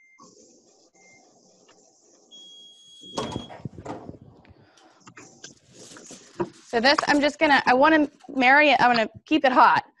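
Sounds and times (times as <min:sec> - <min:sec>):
heat press beep: 0:02.3 - 0:03.7.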